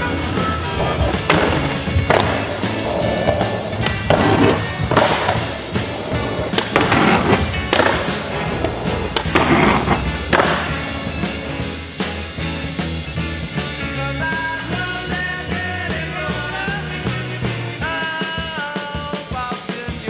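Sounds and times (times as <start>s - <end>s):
background music: 0.0s - 20.0s
skateboard wheels rolling on concrete: 0.0s - 20.0s
skateboard pops and landings: 0.9s - 5.6s, 6.4s - 10.8s.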